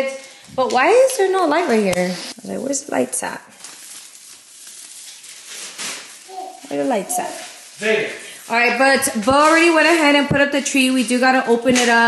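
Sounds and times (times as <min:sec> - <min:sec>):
plastic garland rustling: 0:00.0 - 0:12.0.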